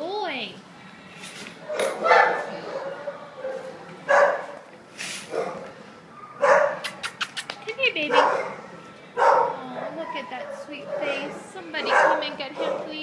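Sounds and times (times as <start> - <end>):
dogs barking: 1.7 - 4.6, 5.3 - 7.0, 8.0 - 13.0.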